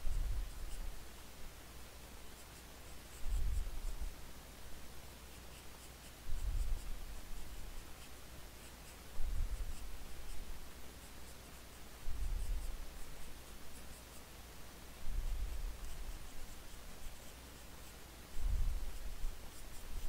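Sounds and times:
pencil scratching on paper: 0.0 - 1.3, 2.2 - 4.2, 5.2 - 14.4, 15.1 - 20.0.

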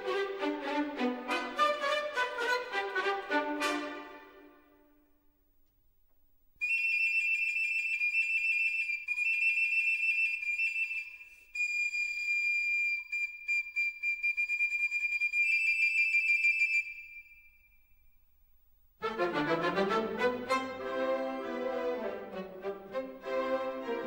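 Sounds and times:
shrill high whistle: 6.6 - 18.3.

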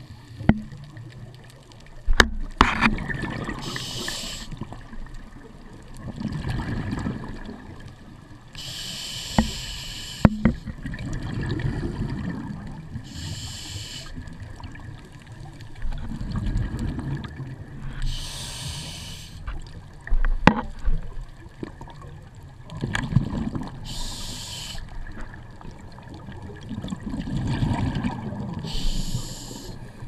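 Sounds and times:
rumbling bubbles: 0.6 - 3.7, 4.6 - 8.2, 10.4 - 13.0, 14.2 - 18.1, 19.5 - 23.9, 24.9 - 28.7
regulator air hissing: 3.6 - 4.6, 8.6 - 10.5, 13.1 - 14.1, 18.1 - 19.4, 23.9 - 24.9, 28.7 - 29.9.

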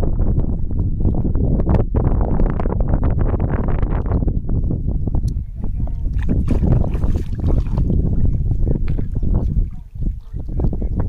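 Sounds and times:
wind rumbling on microphone: 0.0 - 11.0
shallow water sloshing: 5.8 - 10.6
wet mud squelching: 6.1 - 8.0.

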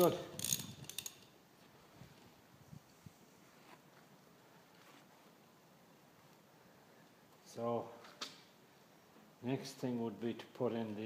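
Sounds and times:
socket wrench ratcheting: 0.0 - 1.3.

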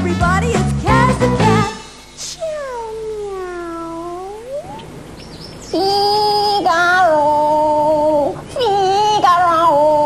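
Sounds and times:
cat meowing: 2.2 - 4.9.

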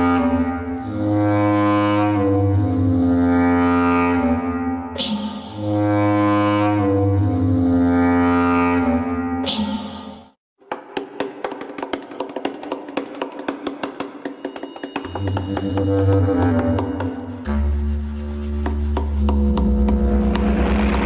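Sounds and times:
rapid ticking percussion: 11.0 - 17.5
sustained low chords: 15.5 - 21.0.

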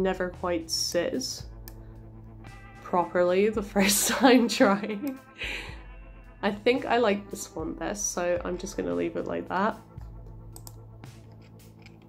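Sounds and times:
computer mouse clicks: 10.5 - 12.0.

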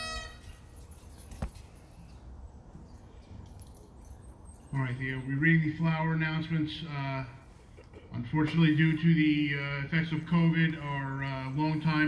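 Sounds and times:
bagpipes: 0.0 - 0.5
low outdoor hum: 0.0 - 12.0.

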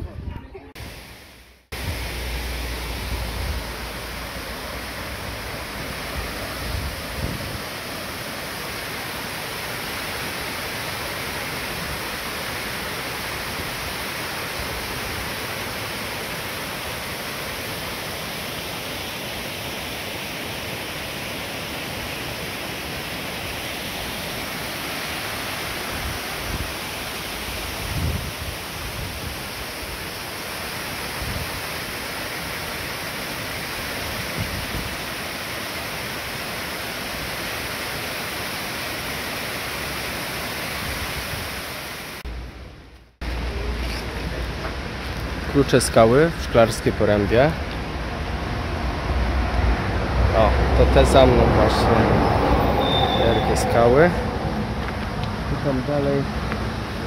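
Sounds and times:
water rushing over weir: 0.8 - 42.3
wind thumps on microphone: 27.8 - 29.4.

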